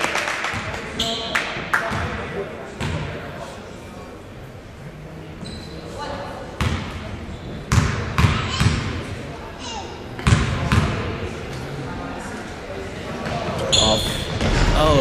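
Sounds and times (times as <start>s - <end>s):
shoe squeak: 5.4s - 6.1s, 7.3s - 7.7s, 13.6s - 14.4s.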